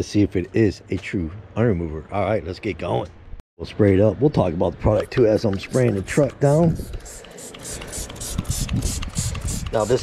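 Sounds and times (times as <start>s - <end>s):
spray bottle spritzing: 5.6s - 10.0s.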